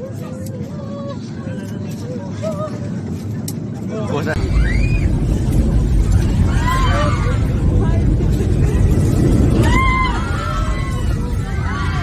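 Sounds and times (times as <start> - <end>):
airliner cabin rumble: 0.0 - 12.0
passengers' voices: 0.0 - 12.0.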